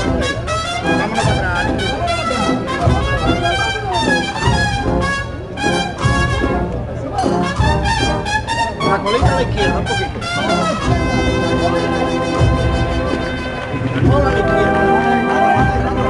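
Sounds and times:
marching band brass: 0.0s - 16.0s
steady drum beat: 0.0s - 16.0s.

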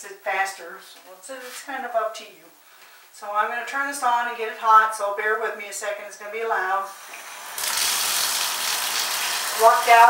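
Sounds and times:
water rushing from tap: 6.9s - 10.0s.

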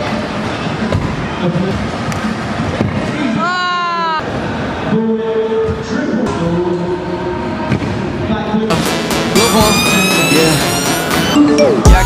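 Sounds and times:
background music: 8.7s - 12.0s.

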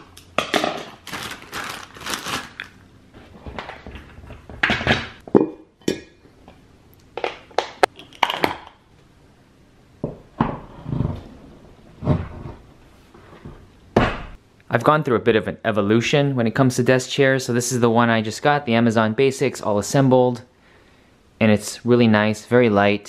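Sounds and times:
plastic packaging crinkling: 0.0s - 2.8s.

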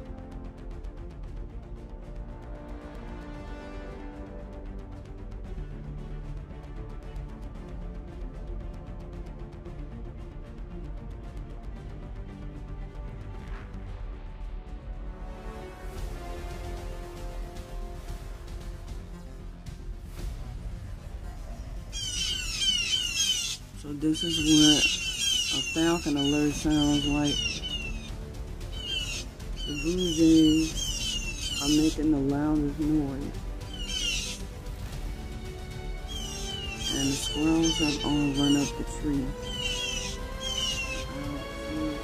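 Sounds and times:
background music: 0.0s - 42.0s
bird alarm calls: 21.9s - 33.0s, 33.6s - 34.5s, 36.0s - 42.0s.

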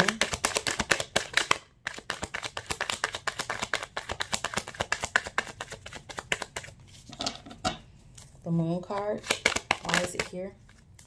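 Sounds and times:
cards being shuffled: 0.0s - 7.2s, 8.1s - 11.0s.

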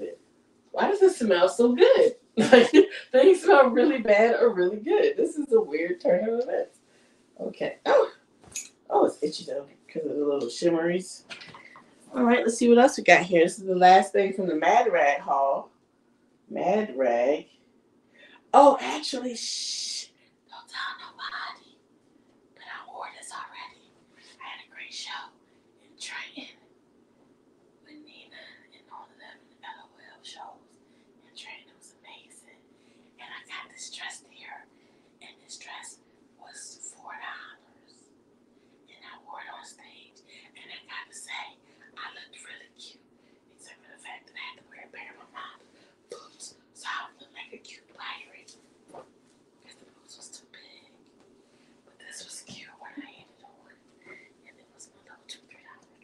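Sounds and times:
steady low hum: 0.0s - 56.0s
woman whispering: 0.8s - 6.7s, 18.8s - 21.8s, 22.6s - 26.6s, 27.9s - 30.6s, 31.3s - 32.6s, 33.2s - 38.0s, 38.9s - 48.6s, 49.7s - 51.0s, 52.0s - 56.0s.

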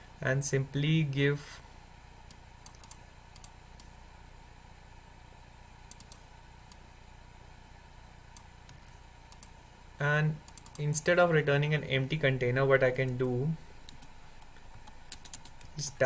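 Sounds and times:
low steady hum: 0.0s - 16.0s
keyboard and mouse clicks: 2.6s - 3.9s, 5.9s - 6.2s, 10.5s - 10.9s, 13.0s - 15.8s.

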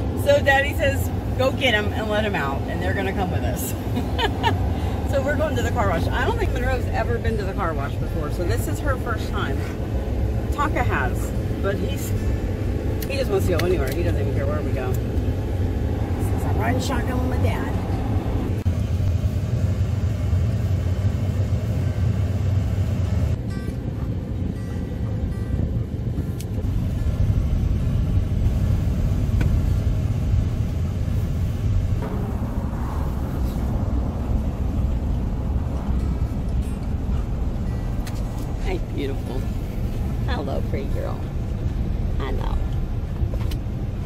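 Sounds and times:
road noise: 0.0s - 44.0s
wind rushing past open window: 0.0s - 44.0s.

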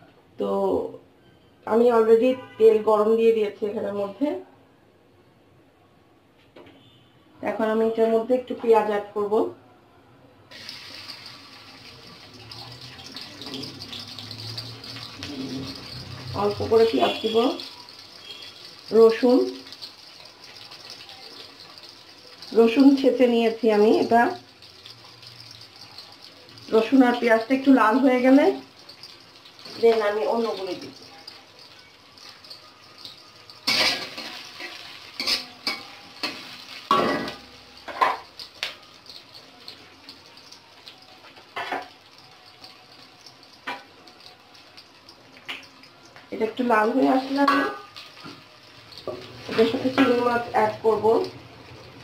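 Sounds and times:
onions sizzling in hot oil: 10.5s - 52.0s
spatula clinks: 28.3s - 51.8s.

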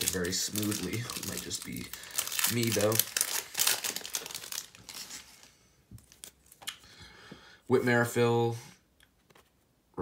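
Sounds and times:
plastic wrapper crinkling and tearing: 0.0s - 6.8s.

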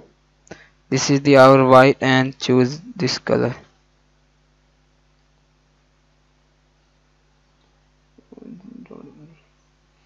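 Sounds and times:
person murmuring: 8.2s - 9.4s.

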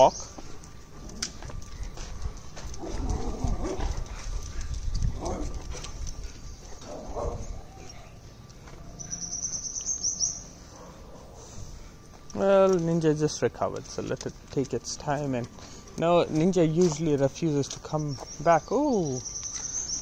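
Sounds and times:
footsteps: 0.0s - 7.6s, 10.4s - 18.4s.

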